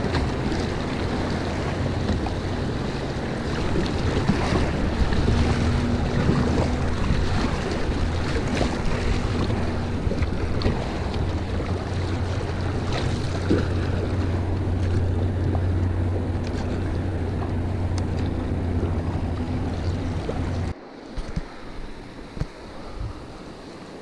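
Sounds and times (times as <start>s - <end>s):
river water rushing: 0.0s - 24.0s
water splashing against kayak hull: 0.0s - 24.0s
wind rumble on microphone: 0.0s - 24.0s.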